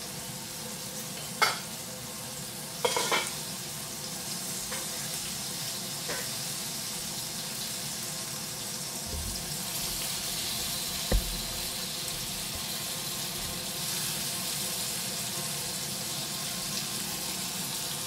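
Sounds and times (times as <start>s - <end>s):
food sizzling in hot oil: 0.0s - 18.0s
sharp knock: 9.1s - 12.7s.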